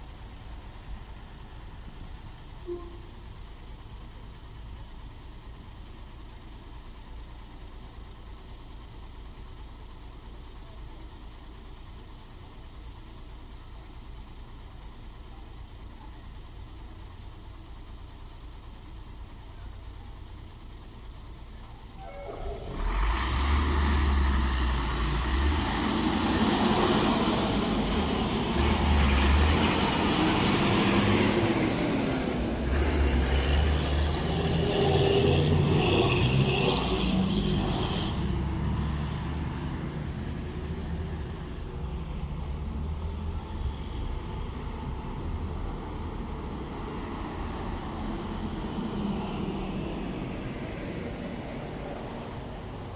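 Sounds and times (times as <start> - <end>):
road traffic passing: 0.0 - 52.9.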